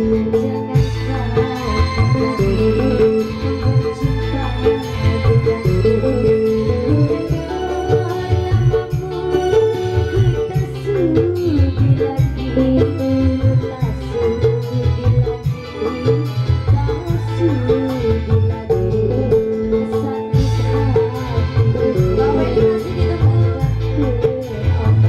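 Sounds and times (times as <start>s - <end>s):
hand drums beat: 0.0s - 25.0s
woman singing into a microphone: 0.0s - 25.0s.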